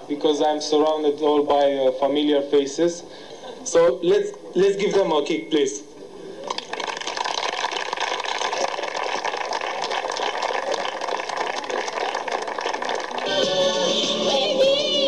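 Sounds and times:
audience applauding: 6.5 - 13.9
music with singing: 13.2 - 15.0.

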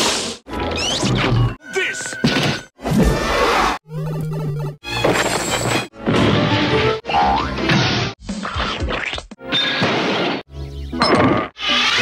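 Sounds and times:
cartoon music: 3.8 - 5.0.

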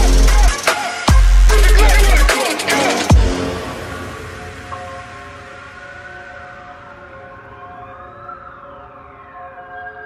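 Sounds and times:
siren-like synth sweep: 3.4 - 10.0.

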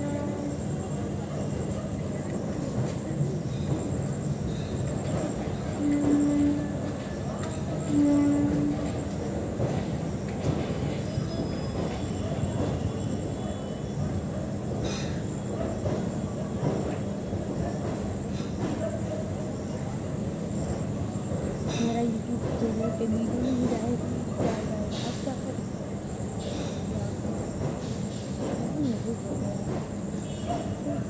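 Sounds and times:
train horn low hoots: 0.0 - 0.7, 5.7 - 7.1, 7.8 - 9.0
train rumbling: 0.0 - 31.0.

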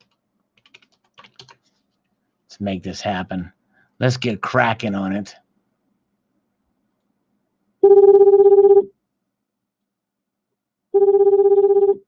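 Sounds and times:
telephone ringback tone: 7.8 - 8.9, 11.0 - 12.0.

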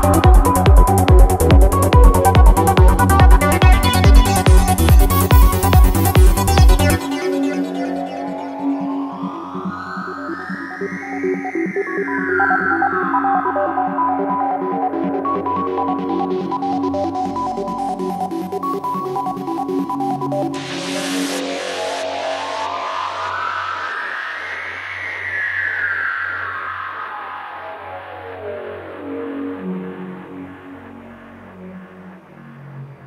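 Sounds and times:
trance music synthesizers: 0.0 - 33.0.

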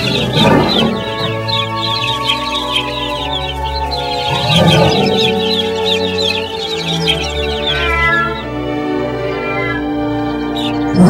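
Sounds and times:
animal calls: 0.0 - 11.0
music with held chords: 0.0 - 11.0.

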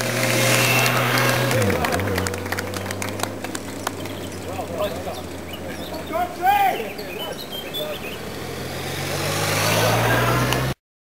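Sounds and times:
loud call: 0.0 - 8.2
spectators' voices: 0.0 - 8.4, 9.5 - 10.8
motorcycle engine approaching: 0.0 - 10.8.

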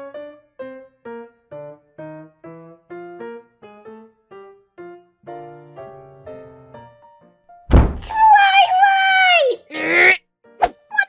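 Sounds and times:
door slamming shut: 7.7 - 8.2
person shouting high-pitched: 8.0 - 10.2.

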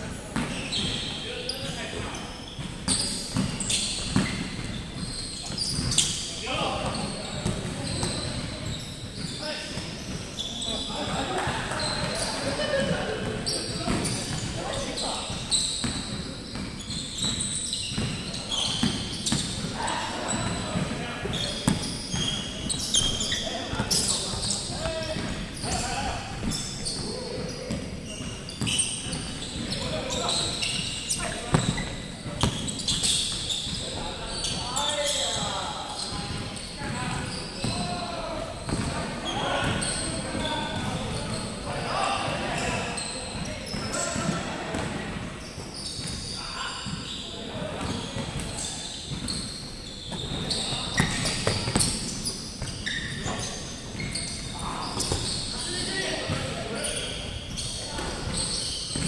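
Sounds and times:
sneakers squeaking: 0.0 - 59.0.

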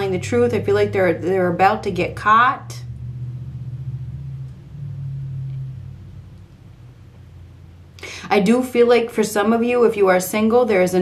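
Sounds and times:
low droning rumble: 0.0 - 11.0.

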